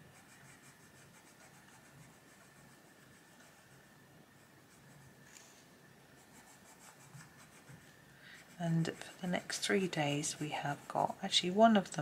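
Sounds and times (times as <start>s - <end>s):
coloured pencil scratching on paper: 0.0s - 5.5s, 6.2s - 12.0s.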